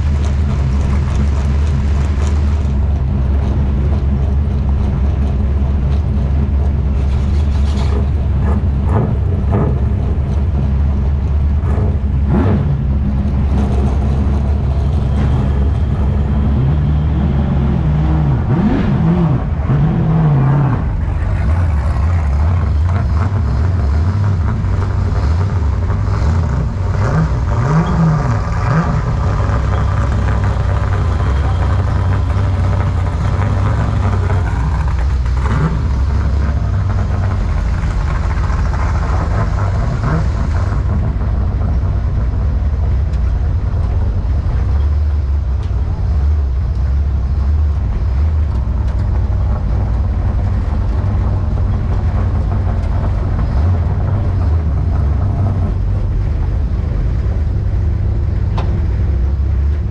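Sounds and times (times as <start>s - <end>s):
race car engine rumbling: 0.0s - 59.9s
engine revving: 7.0s - 59.9s.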